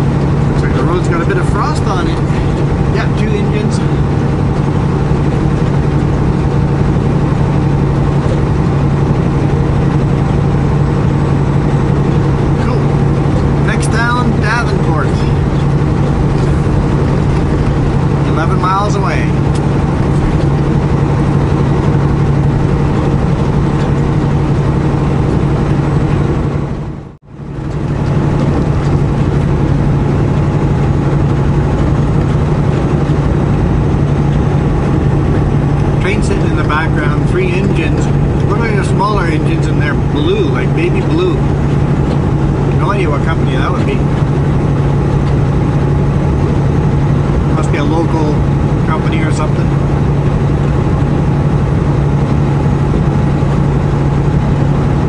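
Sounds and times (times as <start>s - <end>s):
truck engine and road noise droning: 0.0s - 55.0s.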